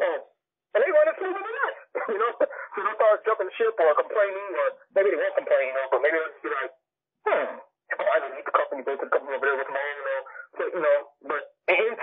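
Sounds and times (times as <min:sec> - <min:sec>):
person talking over phone: 0:00.0 - 0:12.0.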